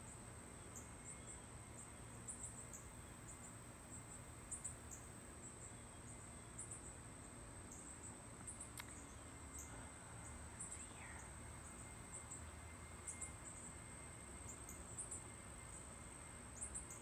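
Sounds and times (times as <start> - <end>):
insect chirping: 0.0 - 17.0
steady high hum: 0.0 - 17.0.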